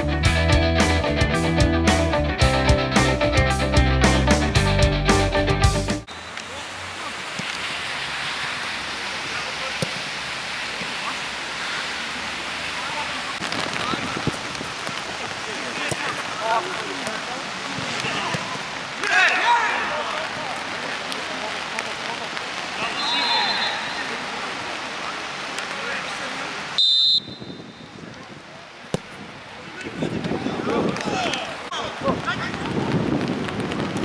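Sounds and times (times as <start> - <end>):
outdoor noise hiss: 6.0 - 34.0
faint voices: 6.3 - 26.8, 27.7 - 34.0
distant shouts of players: 17.9 - 20.8, 22.8 - 24.4
referee whistle blast: 22.8 - 24.1, 26.8 - 27.9.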